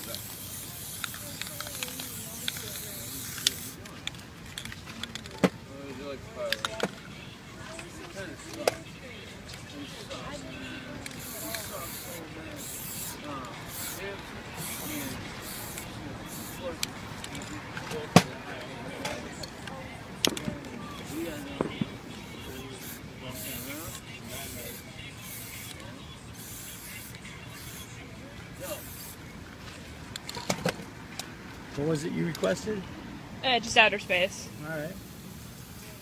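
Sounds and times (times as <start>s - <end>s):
spray paint cans hissing: 0.0s - 5.2s, 11.0s - 17.6s, 20.2s - 28.0s, 28.6s - 29.2s, 34.9s - 36.0s.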